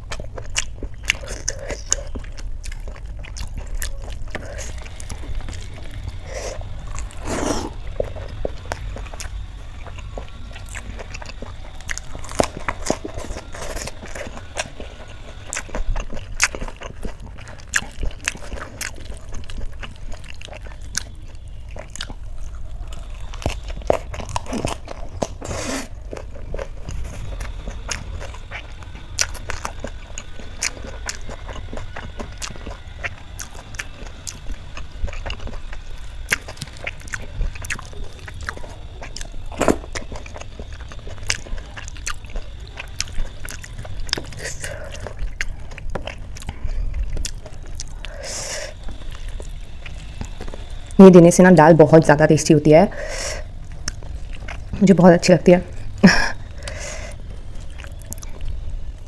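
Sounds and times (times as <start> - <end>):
crisp bites and chewing: 0.0 - 51.0, 53.4 - 54.9, 55.7 - 59.0.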